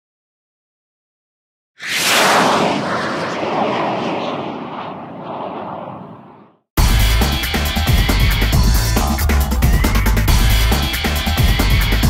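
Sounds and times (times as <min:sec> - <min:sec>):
whoosh sound effect: 0:01.8 - 0:06.0.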